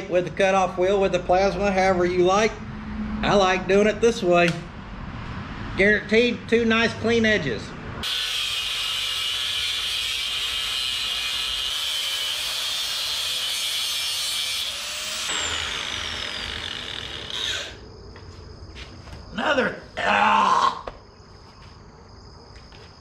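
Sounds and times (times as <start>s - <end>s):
angle grinder cutting steel: 8.0s - 17.8s
grinder wheel winding down: 8.0s - 17.8s.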